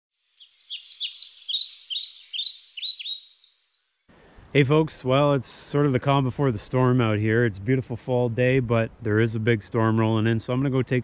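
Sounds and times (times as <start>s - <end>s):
birds chirping: 0.2s - 7.5s.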